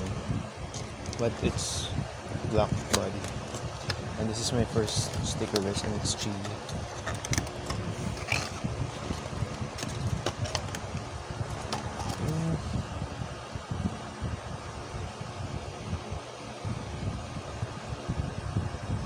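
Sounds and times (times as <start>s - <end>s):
low background rumble: 0.0s - 19.0s
plastic cube handled on table: 6.5s - 10.9s, 11.5s - 12.4s.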